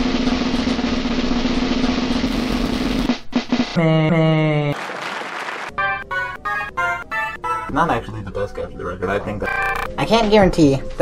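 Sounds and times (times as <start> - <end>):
snare drum roll: 0.0 - 3.8.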